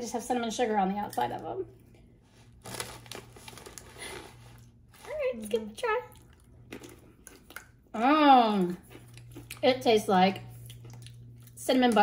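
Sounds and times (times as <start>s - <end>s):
snack bag crinkling: 2.4s - 7.8s.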